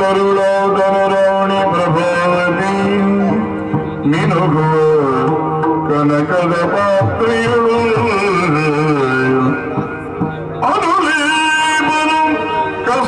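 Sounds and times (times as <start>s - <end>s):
man singing gliding phrases: 0.0s - 13.0s.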